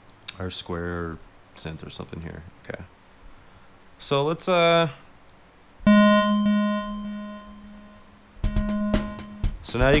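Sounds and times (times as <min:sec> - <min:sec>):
square-wave synth note: 0:05.9 - 0:09.6.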